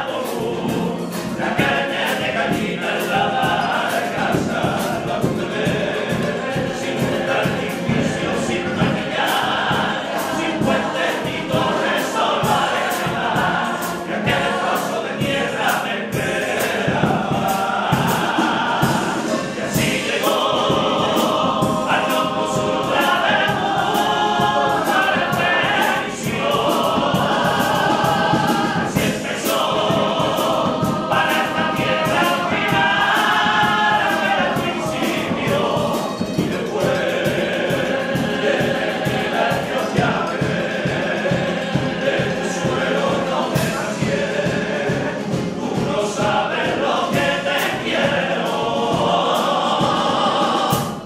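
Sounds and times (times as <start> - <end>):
guitar accompaniment: 0.0 - 51.0
male choir singing in harmony: 0.0 - 51.0
steady percussive beat: 0.0 - 51.0.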